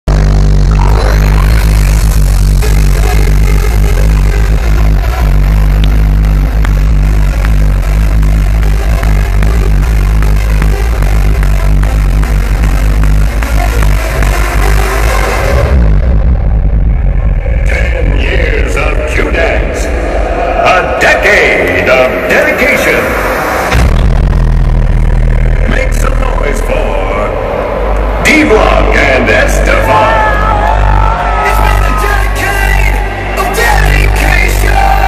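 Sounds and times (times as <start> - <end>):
live hardstyle music: 0.0 - 35.0.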